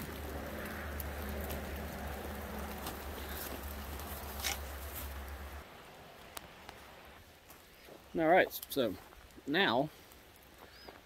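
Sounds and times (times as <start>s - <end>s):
quiet hiss: 0.0s - 11.0s.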